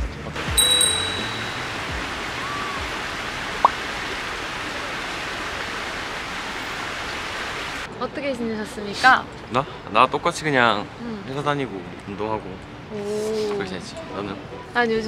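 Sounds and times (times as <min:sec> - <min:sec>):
background music: 0:00.0 - 0:03.0
stream water flowing over rocks: 0:00.4 - 0:07.9
short bright chime: 0:00.5 - 0:02.1.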